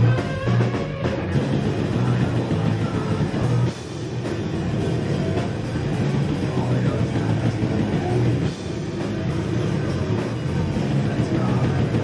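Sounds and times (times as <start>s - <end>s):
bass guitar: 0.0s - 12.0s
distorted electric guitars: 0.0s - 12.0s
drum kit: 0.0s - 12.0s.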